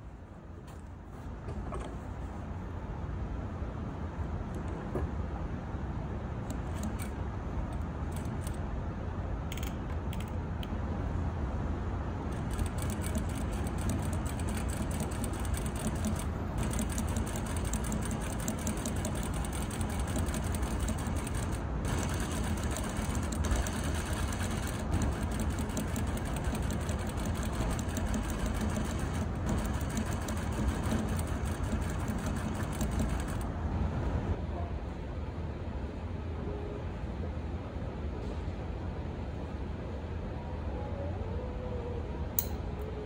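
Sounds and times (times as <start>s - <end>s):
sewing machine stitching: 12.3s - 33.5s.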